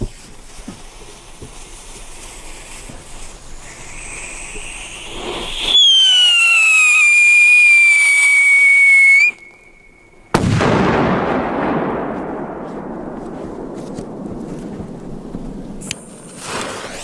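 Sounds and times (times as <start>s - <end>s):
firework whistling: 0.0s - 10.9s, 13.2s - 17.0s
firecracker bang: 3.6s - 17.0s.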